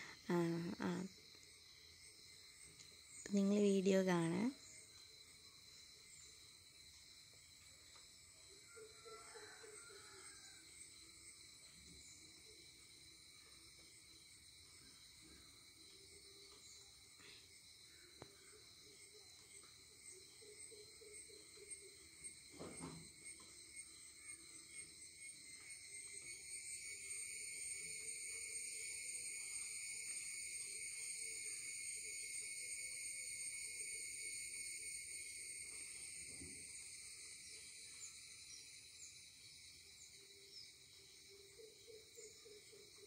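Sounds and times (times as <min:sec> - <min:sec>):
insects chirring: 0:00.0 - 0:43.0.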